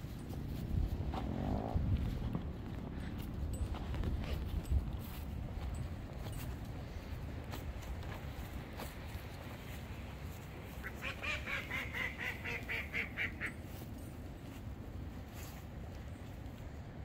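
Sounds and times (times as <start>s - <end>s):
duck quacking: 10.8s - 13.6s.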